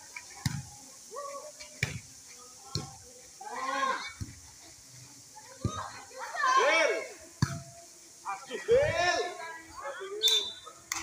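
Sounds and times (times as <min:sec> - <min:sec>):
people shouting: 0:03.4 - 0:04.2, 0:05.6 - 0:07.2.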